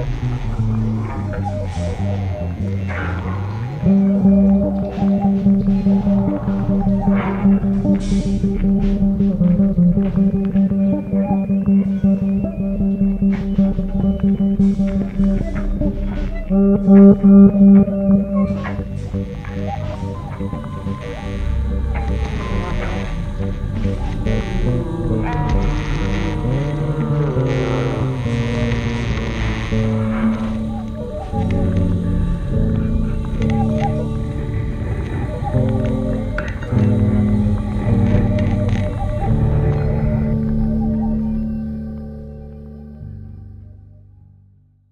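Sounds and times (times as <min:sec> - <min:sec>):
electric bass through effects: 0:00.0 - 0:44.9
hissing swells: 0:12.5 - 0:42.3.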